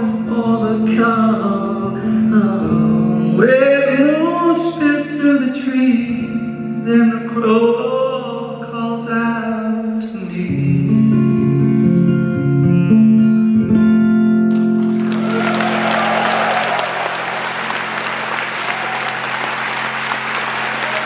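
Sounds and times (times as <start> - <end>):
audience applause: 14.5 - 21.0.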